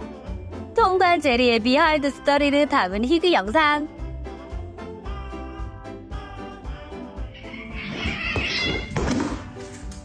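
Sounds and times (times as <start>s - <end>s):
background music: 0.0s - 10.0s
cat crying out: 7.3s - 9.0s.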